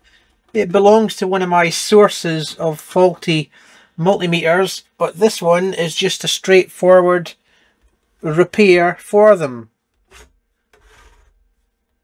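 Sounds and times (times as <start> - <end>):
metal cover scraping along chassis: 10.0 - 11.4.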